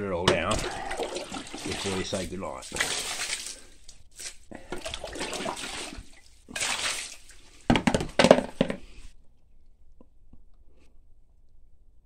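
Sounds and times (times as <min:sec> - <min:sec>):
water splashing over rocks: 0:00.3 - 0:04.0, 0:04.7 - 0:07.4.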